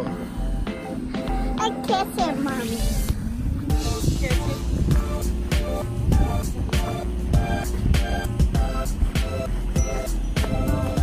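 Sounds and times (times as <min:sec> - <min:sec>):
background music with deep bass: 0:00.0 - 0:11.0.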